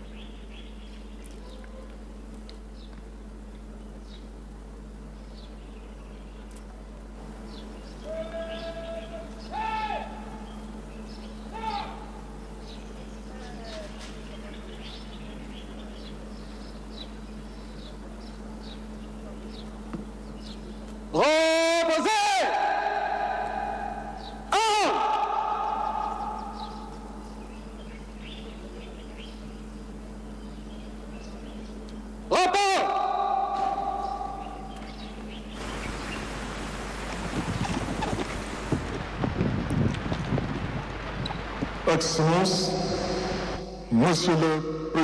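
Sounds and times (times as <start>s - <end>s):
person shouting drill commands: 8.0s - 10.4s, 11.5s - 12.2s, 21.1s - 26.8s, 32.3s - 34.7s.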